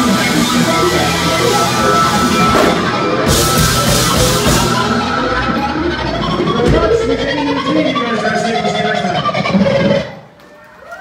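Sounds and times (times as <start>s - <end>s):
funk band playing: 0.0s - 10.3s.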